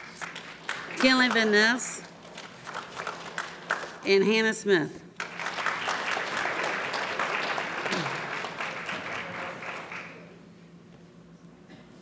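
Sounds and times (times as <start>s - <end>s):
audience applauding: 0.0s - 4.0s, 5.2s - 10.4s.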